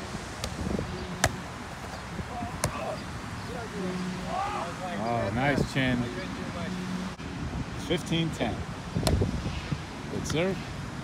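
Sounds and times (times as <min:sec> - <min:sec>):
volleyball hit by hands: 0:00.4 - 0:02.0, 0:02.6 - 0:02.9, 0:09.0 - 0:09.3.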